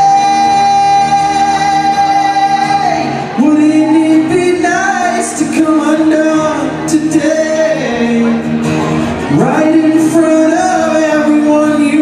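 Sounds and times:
acoustic guitar: 0.0s - 12.0s
man singing: 0.0s - 12.0s.

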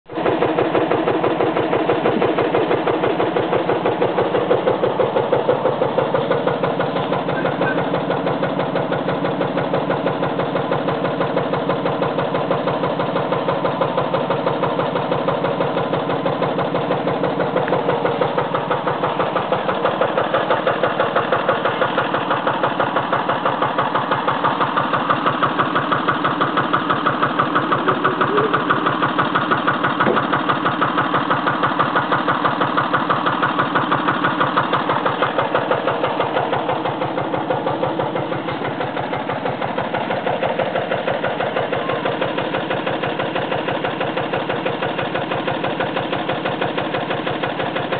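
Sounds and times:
tractor engine running: 0.1s - 47.9s.

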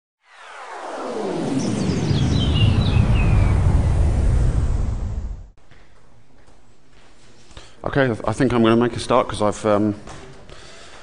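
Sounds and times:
falling pitch sweeps: 0.2s - 5.5s
high gliding tones: 0.2s - 5.5s
rumble: 0.3s - 5.6s.

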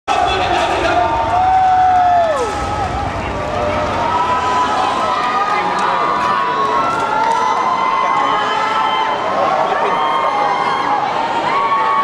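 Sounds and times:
crowd cheering and screaming: 0.1s - 12.0s.

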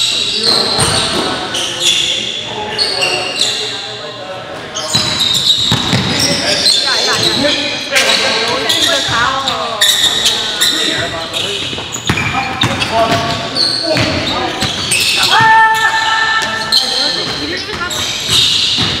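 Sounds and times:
sneakers squeaking on hardwood: 0.0s - 3.8s, 4.6s - 19.0s
indistinct echoing voices: 0.0s - 19.0s
basketball bouncing: 4.9s - 6.4s, 11.6s - 19.0s.

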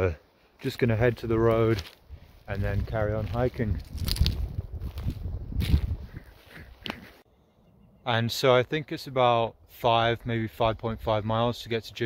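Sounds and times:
footsteps on dry ground: 0.8s - 7.2s
wind rumble: 2.0s - 7.2s.

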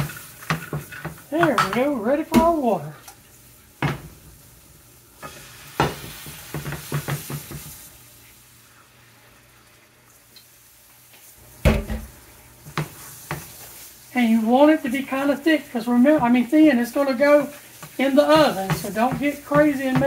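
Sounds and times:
gravy hissing and sizzling: 0.0s - 20.0s
metal spoon scraping a pan: 16.1s - 20.0s.

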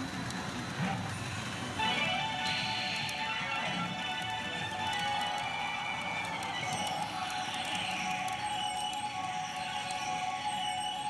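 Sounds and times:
pachinko machine electronic music: 0.8s - 11.0s.

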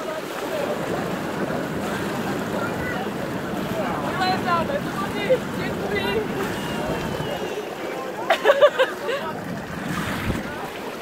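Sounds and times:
water splashing: 0.0s - 11.0s
wind on microphone: 0.5s - 7.8s, 9.3s - 10.9s.

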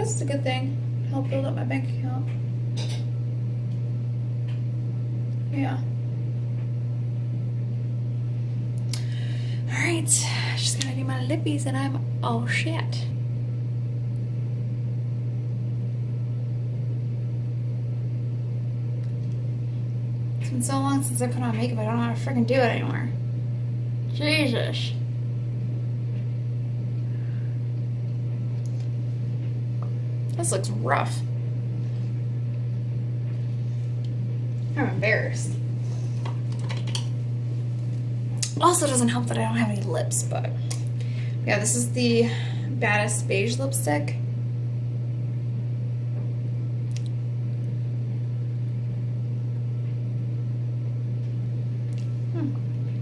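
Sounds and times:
steady low hum: 0.0s - 53.0s.

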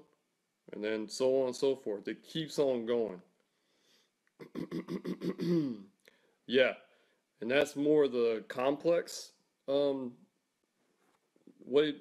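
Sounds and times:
man making wordless vocal pulses: 6.5s - 6.7s.

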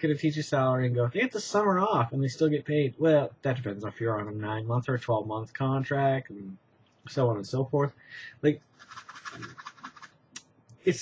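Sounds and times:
light rapid scratching: 8.6s - 10.2s.

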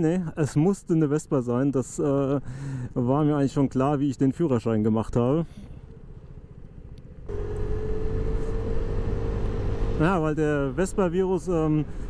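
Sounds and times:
road noise: 0.0s - 12.0s
scooter engine running: 5.9s - 10.2s.

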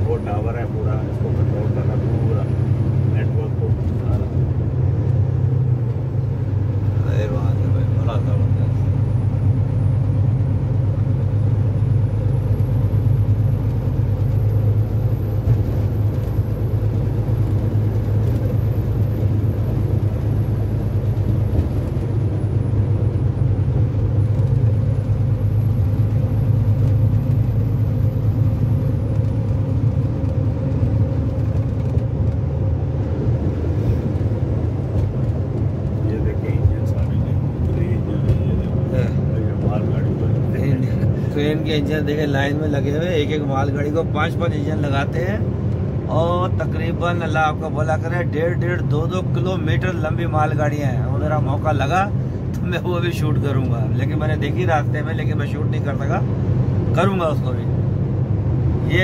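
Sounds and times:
vehicle engine and tyres drone: 0.0s - 59.0s.

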